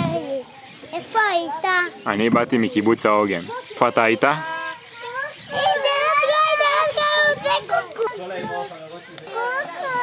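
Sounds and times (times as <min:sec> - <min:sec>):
child calling out: 0:05.0 - 0:07.9.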